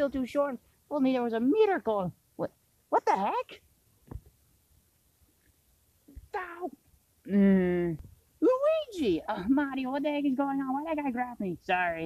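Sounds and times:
person voicing cartoon yelp: 2.9s - 3.6s, 6.2s - 9.5s
soft thump: 4.0s - 4.3s.

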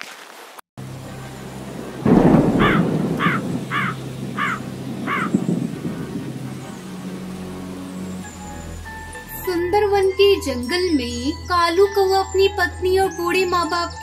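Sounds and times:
steady rain: 0.0s - 9.3s
thunderclap rumbling: 0.8s - 8.6s
crow cawing: 2.4s - 6.2s.

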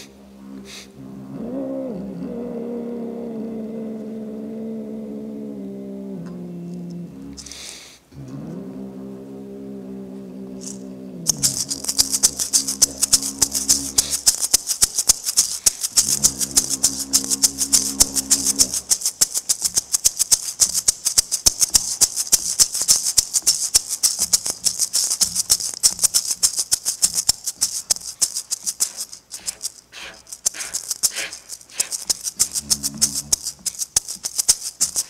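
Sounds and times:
shaker rattling fast: 7.4s - 7.8s, 10.6s - 35.0s
quick breath in: 7.4s - 8.0s
didgeridoo drone: 8.2s - 14.4s, 16.0s - 19.0s, 32.4s - 33.6s.

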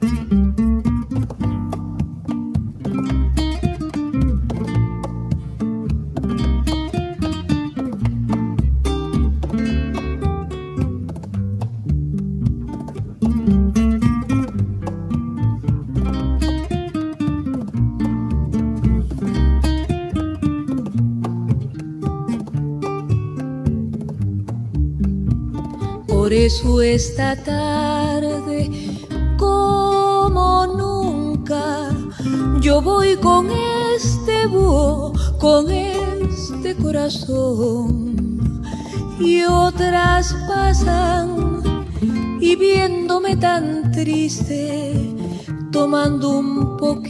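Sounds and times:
acoustic guitar picking: 0.0s - 47.0s.

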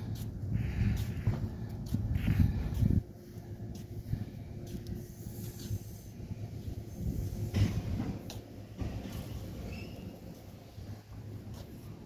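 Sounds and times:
footsteps on concrete: 0.0s - 12.0s
low outdoor rumble: 0.0s - 12.0s.

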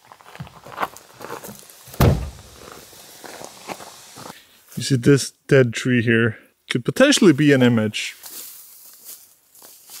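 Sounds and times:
footsteps on dirt: 0.0s - 4.4s, 8.2s - 10.0s
car door shutting: 2.0s - 2.6s.

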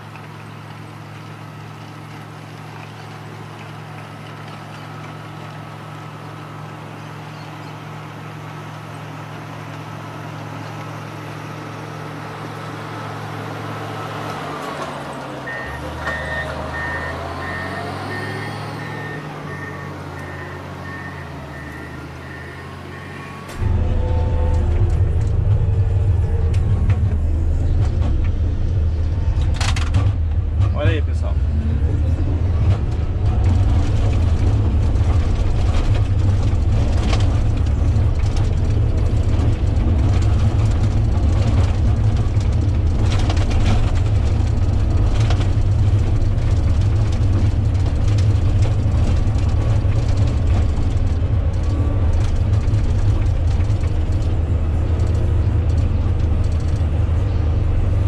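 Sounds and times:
diesel engine droning: 0.0s - 58.0s.

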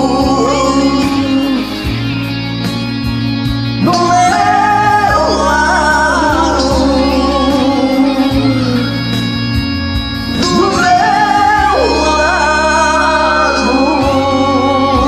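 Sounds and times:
two men singing a ballad: 0.0s - 2.4s, 3.8s - 9.6s, 10.2s - 15.0s
karaoke backing track chords: 0.0s - 15.0s.

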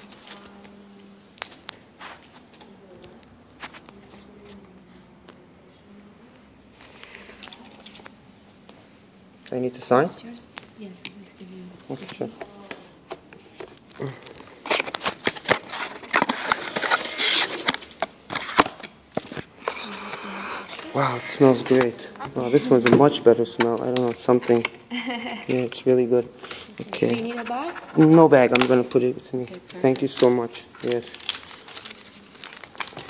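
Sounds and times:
breathy sniff: 19.6s - 20.8s.

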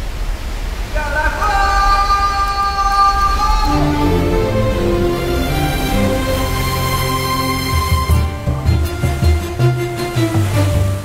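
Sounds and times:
waterfall rumbling: 0.0s - 11.0s
background music with held notes: 3.7s - 11.0s.

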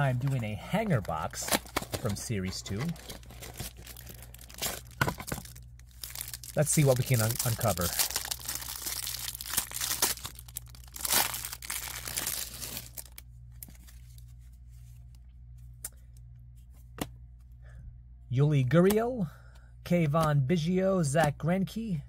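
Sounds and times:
plastic wrapper tearing and crinkling: 0.2s - 14.1s.

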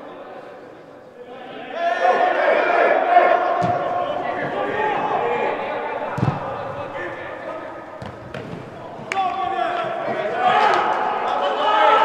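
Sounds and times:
players' voices echoing: 0.0s - 12.0s
football kicked hard: 3.6s - 5.0s, 6.1s - 7.0s, 8.0s - 9.1s.

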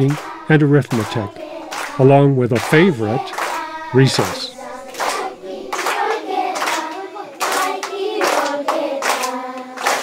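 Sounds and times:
children singing together: 0.0s - 10.0s
hand claps: 0.0s - 10.0s.

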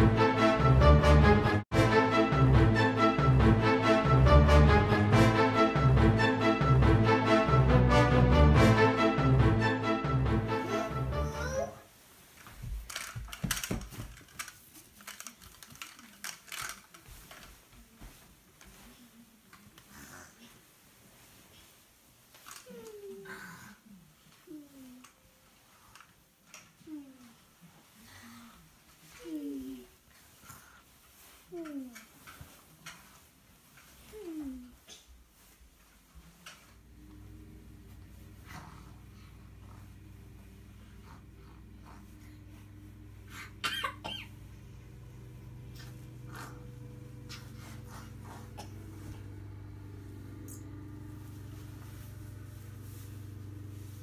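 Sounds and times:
bed covers rustling: 10.5s - 23.2s, 24.0s - 54.0s
toy car clicking: 12.9s - 17.0s
faint low hum: 35.4s - 54.0s
person coughing: 43.4s - 44.4s.

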